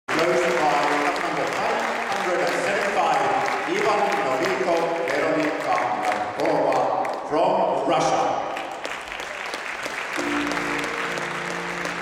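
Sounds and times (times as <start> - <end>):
audience applauding: 0.1 - 7.2, 8.5 - 12.0
man talking over loudspeakers: 0.1 - 8.6.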